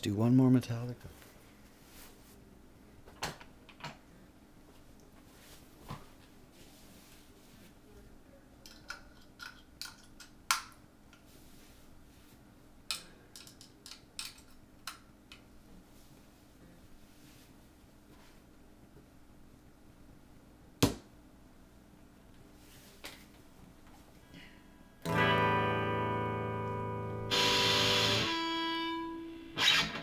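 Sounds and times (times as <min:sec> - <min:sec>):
faint low hum: 0:00.0 - 0:29.6
objects clicking and tapping: 0:08.7 - 0:10.8, 0:12.9 - 0:15.4.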